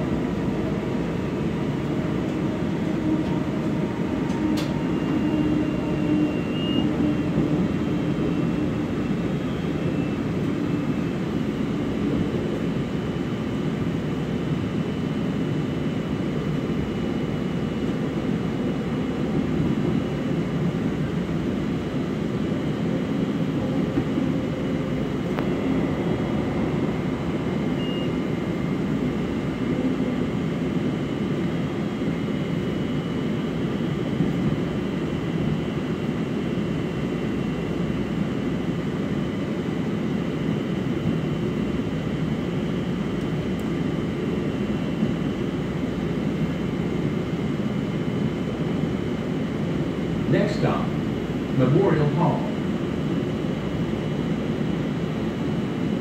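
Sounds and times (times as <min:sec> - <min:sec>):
faint whining tones: 0:00.0 - 0:11.5
rumble of wheels on rails: 0:00.0 - 0:56.0.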